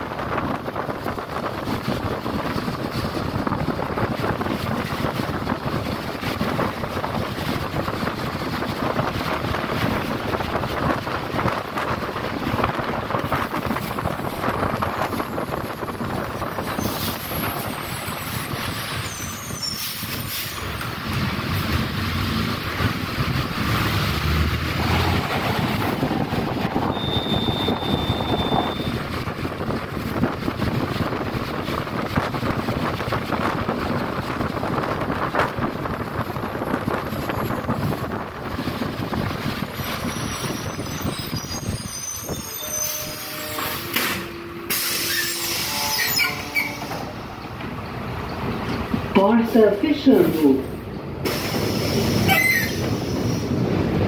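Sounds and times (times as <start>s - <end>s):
bus engine and road noise: 0.0s - 54.0s.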